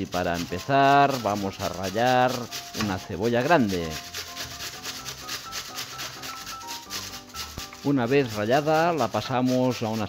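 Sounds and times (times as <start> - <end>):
onion grated on metal grater: 0.0 - 10.0
soft background music: 0.0 - 10.0.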